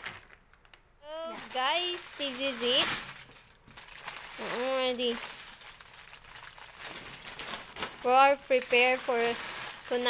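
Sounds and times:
faint irregular crackles: 0:00.0 - 0:10.0
plastic wrappers crinkling: 0:00.0 - 0:10.0.

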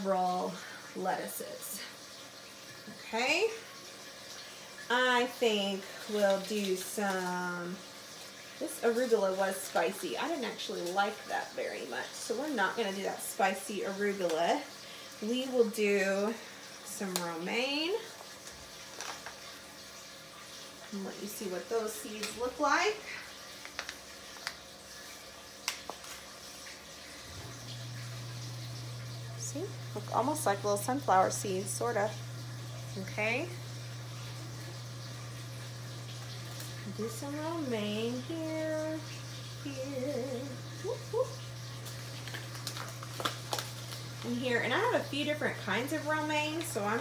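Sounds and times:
water trickling: 0:00.0 - 0:47.0
paper packet clicks and rustles: 0:18.3 - 0:19.5, 0:23.6 - 0:24.6, 0:41.9 - 0:44.3.

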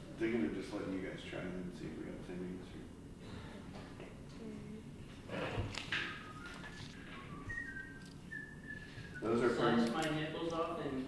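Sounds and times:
person whistling a tune: 0:06.1 - 0:09.4.

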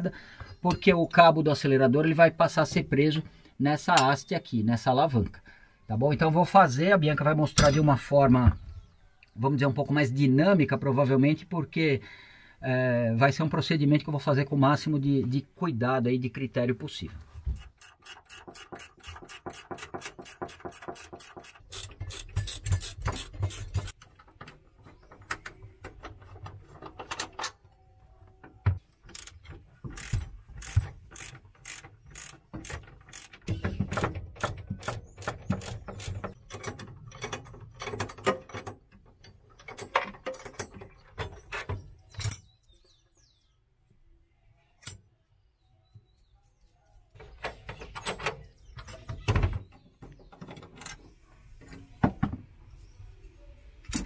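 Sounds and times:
wrenches clicking on bolts: 0:17.6 - 0:24.6, 0:29.0 - 0:42.5.

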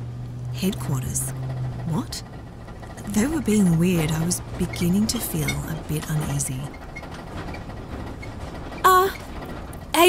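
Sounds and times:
van road rumble from inside: 0:00.0 - 0:10.0.

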